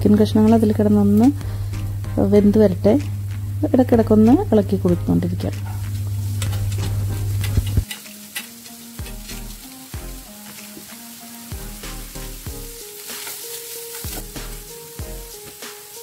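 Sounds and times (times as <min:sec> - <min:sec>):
onions sizzling in hot oil: 0:00.0 - 0:16.0
spatula clicking against pan: 0:06.4 - 0:09.4.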